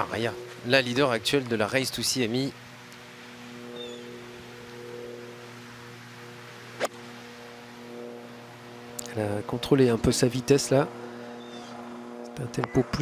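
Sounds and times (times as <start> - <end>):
steady low hum: 0.0 - 13.0
golf club striking ball: 6.7 - 7.1.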